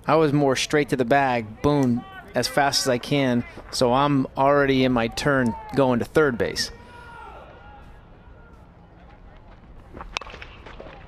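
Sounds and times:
low ballpark ambience: 0.0 - 11.0.

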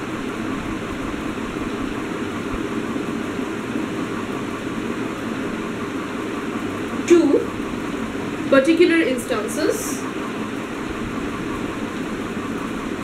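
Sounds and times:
continuous hiss: 0.0 - 13.0.

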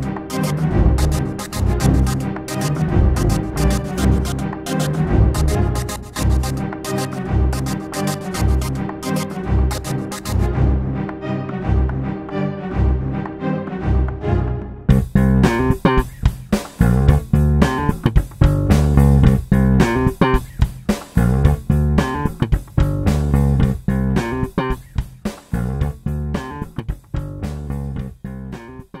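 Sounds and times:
guitar and bass instrumental music: 0.0 - 12.4, 13.1 - 29.0.

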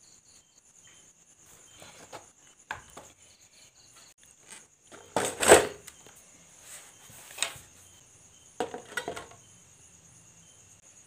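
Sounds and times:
crickets chirping: 0.0 - 11.0
plastic cover clacking on metal tray: 8.6 - 9.4.

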